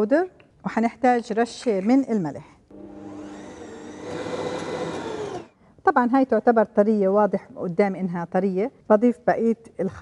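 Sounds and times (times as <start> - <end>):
stand mixer motor hum: 2.7 - 5.5.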